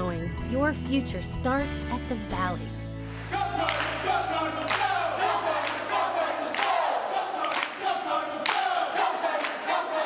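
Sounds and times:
crowd shouting in unison: 0:03.2 - 0:10.0.

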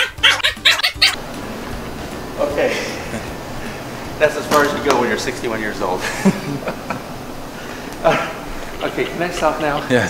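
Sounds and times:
steady hiss: 0:01.2 - 0:10.0.

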